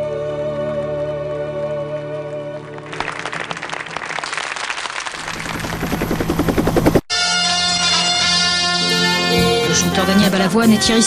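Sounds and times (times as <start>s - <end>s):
helicopter rotor beating: 5.0s - 7.1s.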